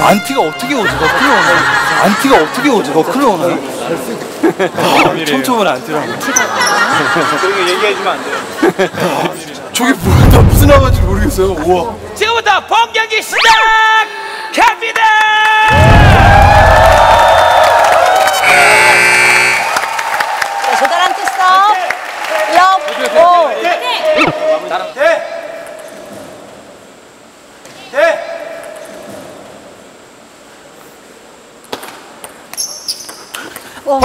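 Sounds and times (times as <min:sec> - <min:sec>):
electronic tone: 0:18.4 - 0:19.7.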